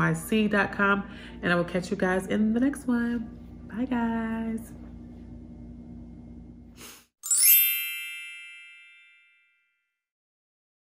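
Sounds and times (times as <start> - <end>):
bell-like chime sweep: 7.2 - 9.7.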